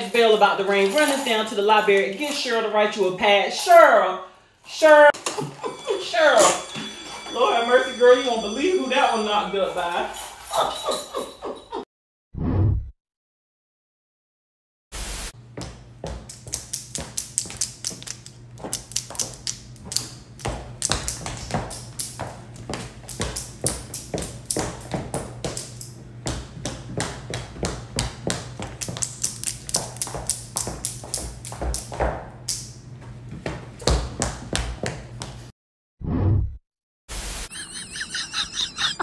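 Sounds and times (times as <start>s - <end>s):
static hiss: 15.0s - 15.3s
high heels clicking on hard floor: 15.5s - 35.5s
long nails tapping: 16.0s - 32.7s.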